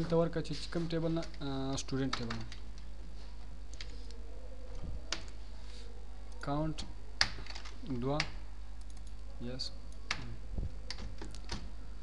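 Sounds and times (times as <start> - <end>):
man speaking: 0.0 - 2.5, 7.8 - 8.3
steady low hum: 0.0 - 12.0
keyboard keys tapping: 10.1 - 11.7.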